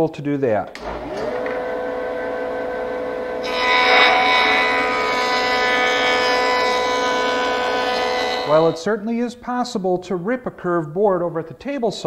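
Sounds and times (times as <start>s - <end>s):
jointer whining: 0.7s - 8.8s
cutterhead planing wood: 0.8s - 8.8s.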